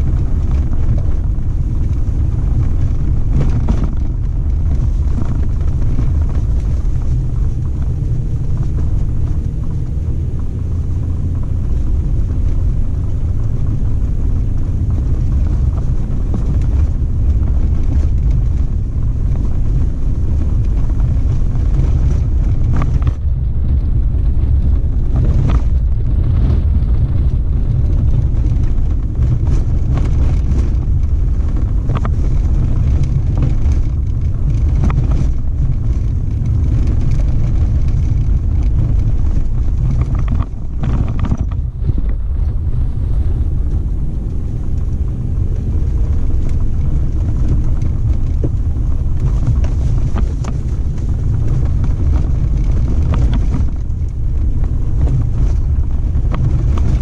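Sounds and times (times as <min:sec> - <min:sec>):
knocks and rattles: 0:00.0 - 0:23.3, 0:24.6 - 0:42.8
vehicle engine and tyre rumble: 0:00.0 - 0:57.0.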